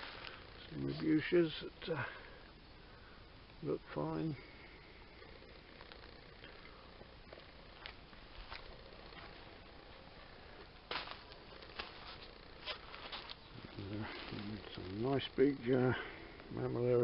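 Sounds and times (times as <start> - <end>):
footsteps on gravel: 7.7 - 10.0, 10.9 - 15.0.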